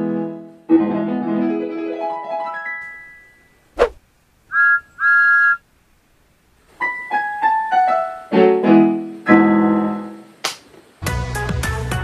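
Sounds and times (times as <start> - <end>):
two-note steam whistle toots: 4.5 - 5.6.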